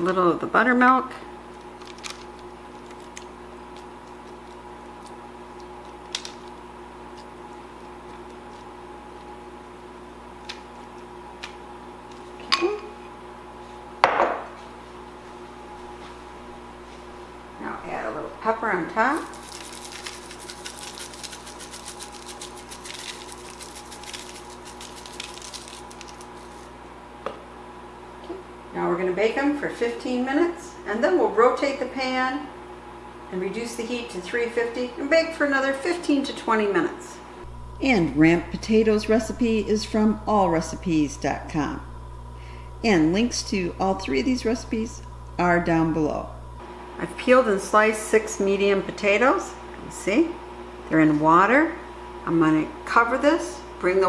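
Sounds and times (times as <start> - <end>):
kitchen appliance humming: 0.0 - 54.0
pepper shaker rattling: 19.2 - 26.7.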